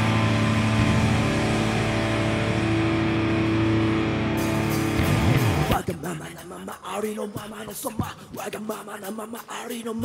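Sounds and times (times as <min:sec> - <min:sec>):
distorted guitar and bass chord: 0:00.0 - 0:05.9.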